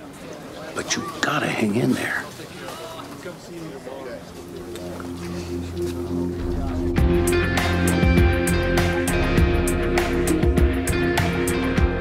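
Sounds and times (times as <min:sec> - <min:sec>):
faint voices: 0:00.0 - 0:07.9
sustained low score notes: 0:03.8 - 0:10.8.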